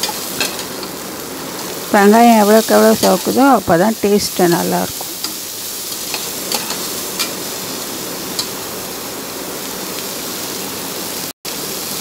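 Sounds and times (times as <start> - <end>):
onions sizzling in hot oil: 0.0 - 12.0.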